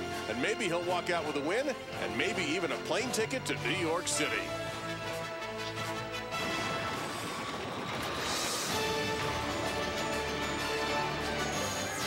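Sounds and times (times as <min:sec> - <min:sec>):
sports theme music: 0:00.0 - 0:07.5, 0:08.1 - 0:12.0.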